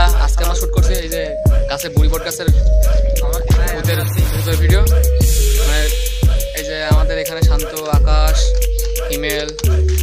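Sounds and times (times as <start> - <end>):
deep bass hits: 0.0 - 8.7
hi-hat ticks: 0.0 - 10.0
rapping over a beat: 0.0 - 10.0.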